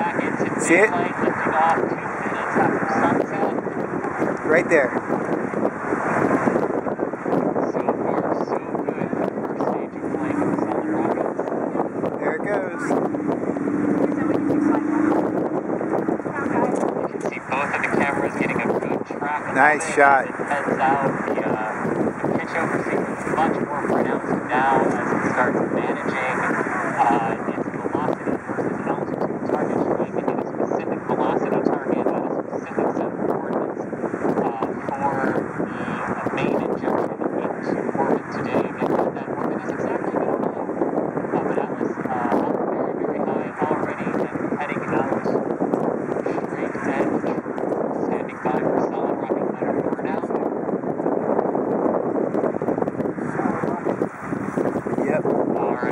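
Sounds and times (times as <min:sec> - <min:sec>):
muffled speech: 0:00.0 - 0:05.0, 0:07.5 - 0:45.4, 0:46.2 - 0:50.5, 0:53.2 - 0:54.0, 0:54.8 - 0:55.9
wind noise on microphone: 0:00.0 - 0:55.9.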